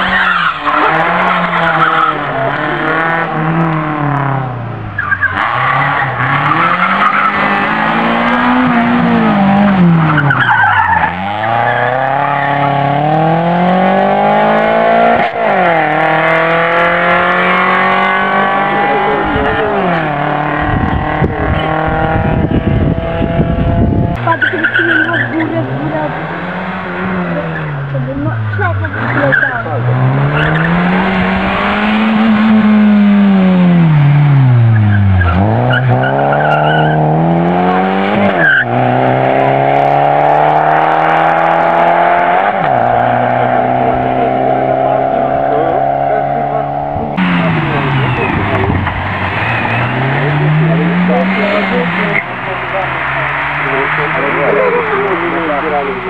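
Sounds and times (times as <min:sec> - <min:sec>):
tyre squeal on tarmac: 0:00.0 - 0:02.5, 0:05.0 - 0:07.5, 0:10.0 - 0:12.6, 0:24.2 - 0:25.4, 0:28.5 - 0:29.7, 0:34.7 - 0:37.0, 0:38.2 - 0:38.8
rally car engines revving: 0:00.0 - 0:56.0
rough low rumbling: 0:11.0 - 0:24.4, 0:25.4 - 0:56.0.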